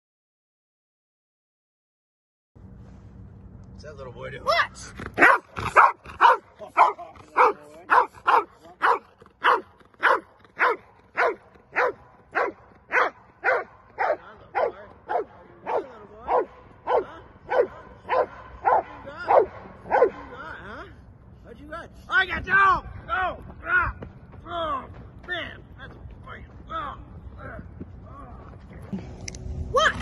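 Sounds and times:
dog barking: 5.2s - 20.4s.

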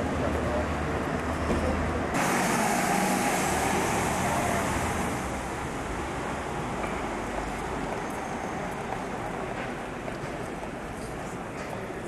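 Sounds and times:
street traffic engine hum: 0.0s - 12.0s.

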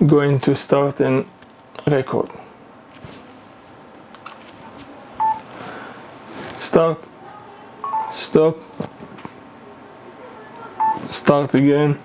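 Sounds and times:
short electronic beep: 7.8s - 8.3s, 10.8s - 11.0s.

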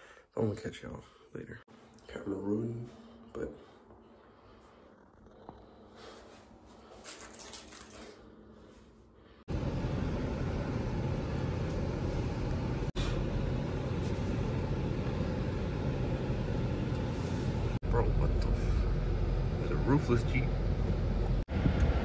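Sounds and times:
keys jingling: 6.9s - 8.4s
road noise: 9.5s - 22.0s.

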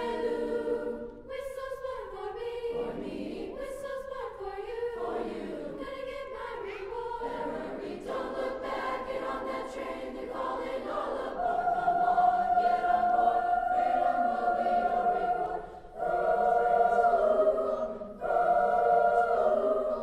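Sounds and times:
choir singing in harmony: 0.0s - 20.0s.

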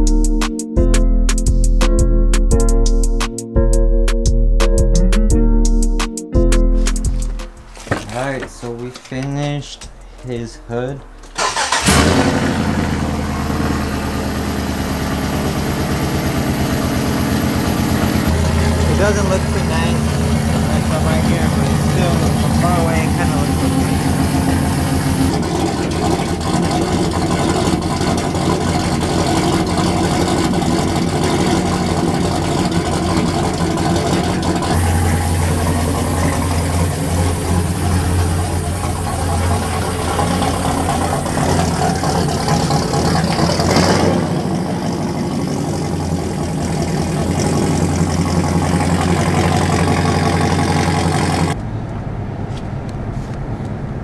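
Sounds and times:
truck engine pulling away: 9.5s - 54.0s
car driving hum from inside: 11.0s - 54.0s.

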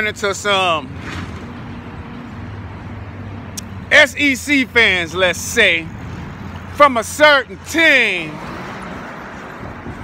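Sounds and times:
outdoor street noise: 0.0s - 10.0s.

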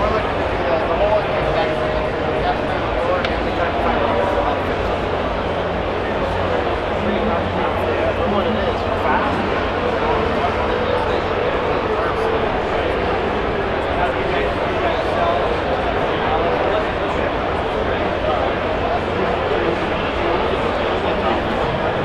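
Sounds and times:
crowd chatter: 0.0s - 22.0s.

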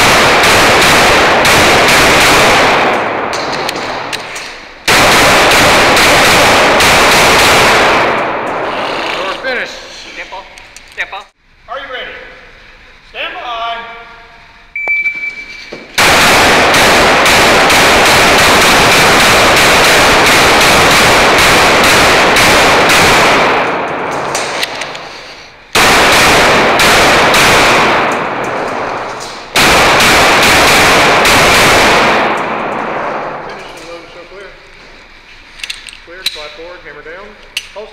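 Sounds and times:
pistol shots echoing: 0.0s - 8.7s, 16.0s - 25.0s, 25.7s - 33.6s
shot timer beep: 14.8s - 15.6s.

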